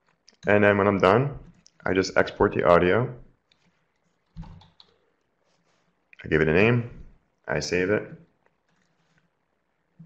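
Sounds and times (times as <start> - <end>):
computer keyboard typing: 3.5 - 5.0.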